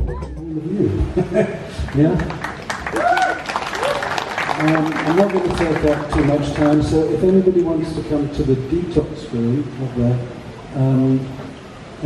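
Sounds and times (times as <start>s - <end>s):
audience clapping: 1.8s - 8.1s
people calling out and cheering: 2.6s - 6.8s.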